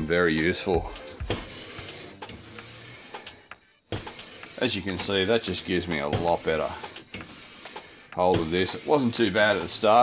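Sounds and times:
faint scraping on metal: 1.2 - 10.0.

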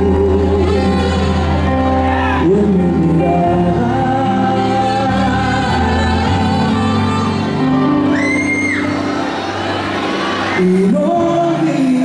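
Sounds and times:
high cry or whistle: 8.1 - 9.0.

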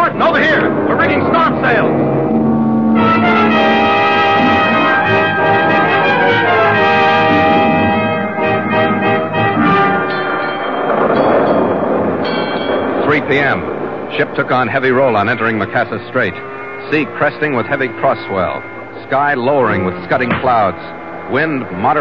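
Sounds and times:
orchestral music with brass: 0.0 - 11.2, 14.7 - 22.0.

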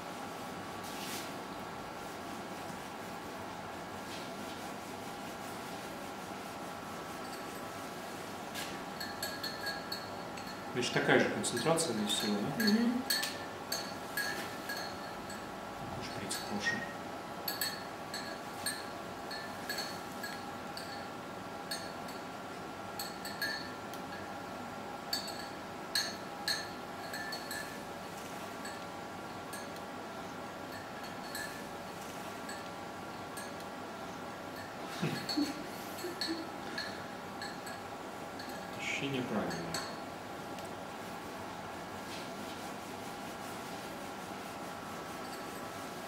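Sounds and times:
steady electrical hum: 0.0 - 46.0
light glassy clinks: 9.0 - 10.6, 11.5 - 15.5, 17.5 - 21.1, 21.7 - 22.4, 23.0 - 24.3, 25.1 - 27.8, 30.7 - 31.7, 34.6 - 38.7, 39.4 - 40.1.

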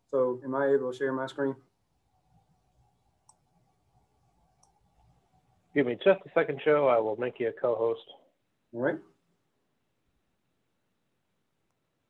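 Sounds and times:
faint clicks: 2.1 - 5.6.

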